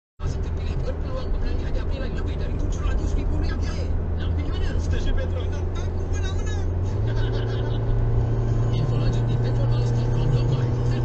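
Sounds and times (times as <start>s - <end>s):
people talking: 0.2s - 8.0s, 8.6s - 11.0s
car engine and road noise: 0.2s - 11.0s.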